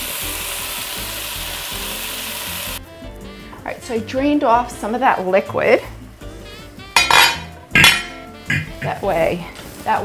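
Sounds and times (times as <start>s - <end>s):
ground meat sizzling in a pot: 0.0s - 2.9s.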